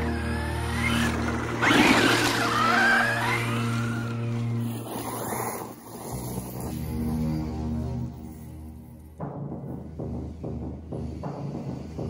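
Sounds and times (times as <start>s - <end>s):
tyres on dirt: 0.0s - 5.6s
rc truck motor whine: 0.0s - 8.1s
background music with low notes: 0.0s - 12.0s.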